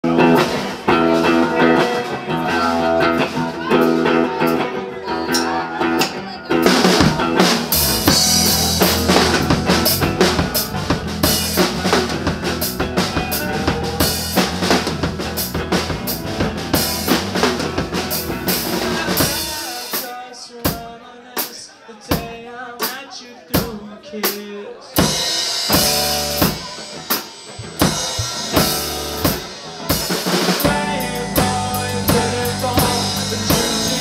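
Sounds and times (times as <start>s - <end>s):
electric guitars: 0.0s - 19.9s, 25.0s - 34.0s
drum kit: 0.0s - 24.4s, 25.0s - 34.0s.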